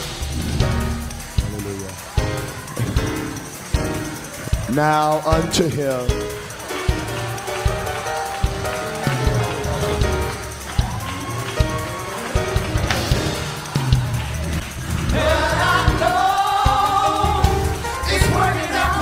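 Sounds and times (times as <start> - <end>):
gospel music with chords and bass: 0.0 - 19.0
steady drum beat: 0.0 - 19.0
voices singing: 0.0 - 19.0.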